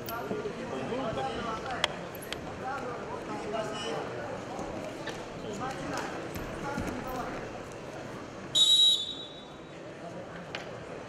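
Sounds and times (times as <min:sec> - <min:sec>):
arena crowd murmur: 0:00.0 - 0:11.0
referee's whistle blast: 0:08.5 - 0:09.6.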